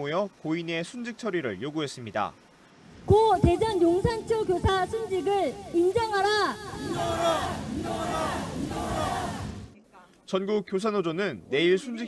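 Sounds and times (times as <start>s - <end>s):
protesters chanting in unison: 5.1s - 9.7s.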